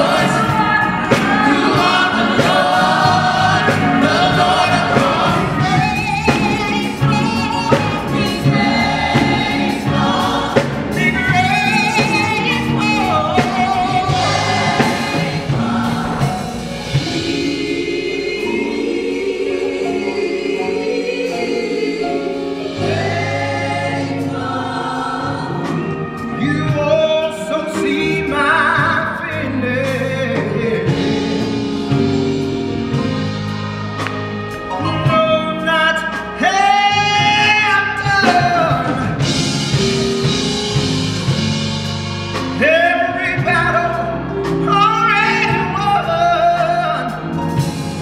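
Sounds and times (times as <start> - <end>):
gospel choir singing: 0.0 - 48.0.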